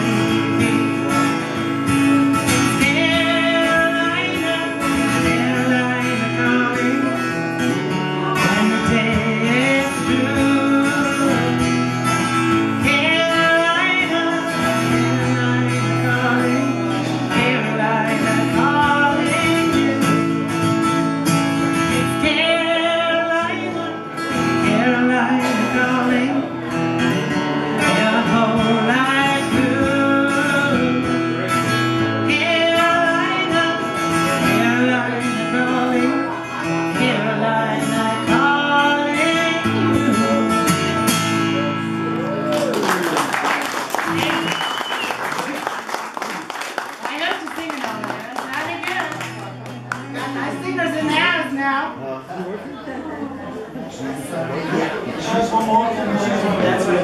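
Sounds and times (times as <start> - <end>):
acoustic guitar: 0.0 - 57.0
woman singing: 2.4 - 11.7, 12.5 - 20.4, 21.9 - 26.6, 27.8 - 40.8
audience applauding: 42.2 - 50.8.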